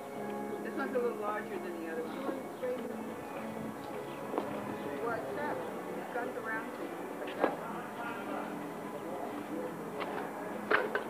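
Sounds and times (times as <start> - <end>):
outdoor murmur: 0.0 - 11.0
people chattering: 0.0 - 11.0.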